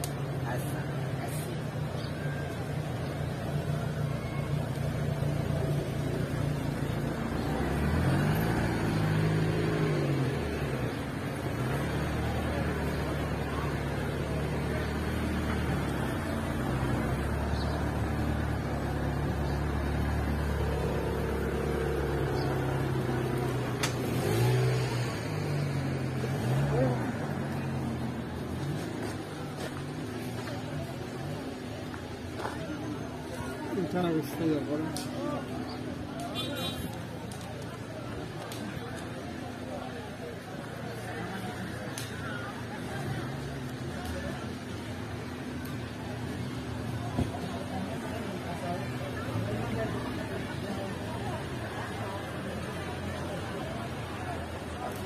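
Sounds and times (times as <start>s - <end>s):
car engines revving: 0.0s - 55.0s.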